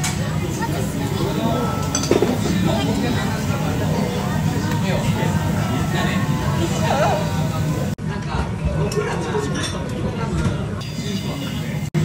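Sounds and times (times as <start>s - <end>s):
restaurant voices: 0.0s - 12.0s.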